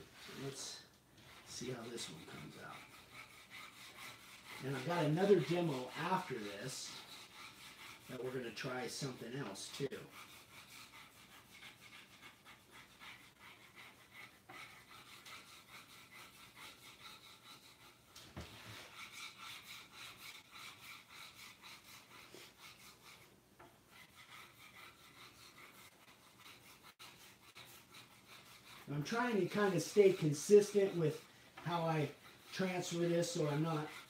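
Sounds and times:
fingers rubbing paper: 1.3 - 8.1, 8.9 - 23.3, 23.9 - 34.0.

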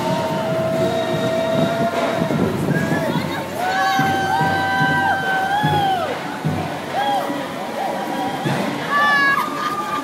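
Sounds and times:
street crowd chatter: 0.0 - 10.0.

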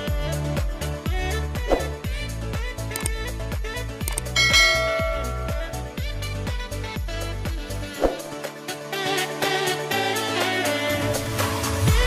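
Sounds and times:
music with steady beat: 0.0 - 12.0
bright bell chime: 4.4 - 5.9.

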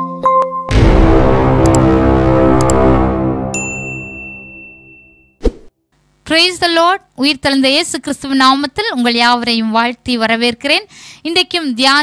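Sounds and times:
intro music: 0.7 - 4.5
bright electronic ding: 3.5 - 5.4.

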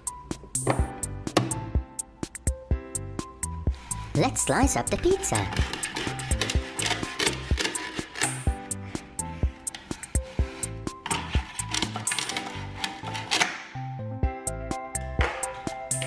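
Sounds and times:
upbeat background music: 0.0 - 16.0
velcro rasps: 5.4 - 8.5.

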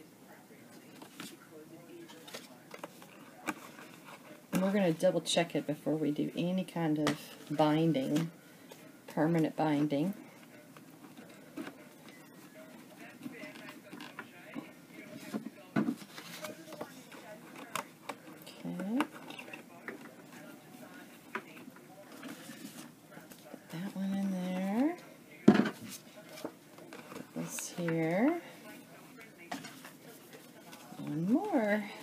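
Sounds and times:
paper pages rustling: 2.0 - 4.9, 10.4 - 18.4, 19.0 - 24.9.

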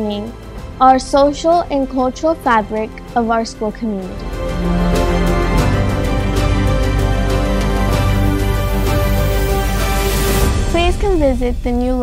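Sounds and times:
girl's voice: 0.0 - 4.2, 10.8 - 12.0
music with sustained notes: 0.0 - 12.0.

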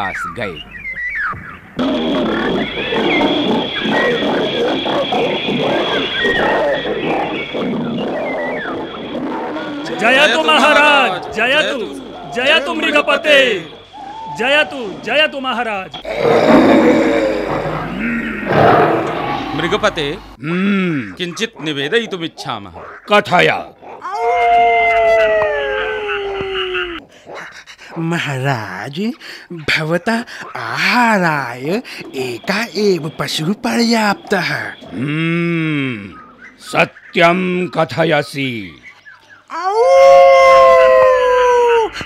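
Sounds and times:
cartoon animals roaring: 1.8 - 15.0, 16.0 - 27.0
dog howling: 1.8 - 15.0, 16.0 - 20.4, 23.8 - 27.0, 39.6 - 42.0
steady high tone: 9.6 - 20.4.

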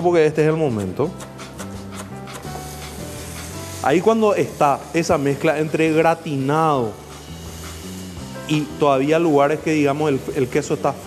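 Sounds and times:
soft background music: 0.0 - 11.0
food sizzling in a pan: 1.1 - 11.0.

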